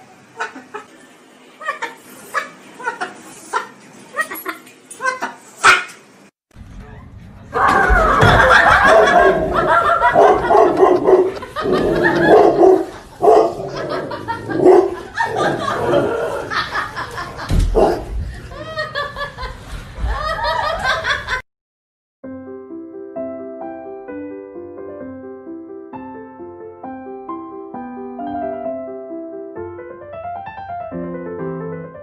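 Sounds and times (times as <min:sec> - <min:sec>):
dog barking: 0:05.6 - 0:06.0, 0:08.8 - 0:11.4, 0:12.1 - 0:13.6, 0:14.6 - 0:15.0, 0:17.8 - 0:18.1
people laughing loudly: 0:07.6 - 0:17.5, 0:18.4 - 0:21.4.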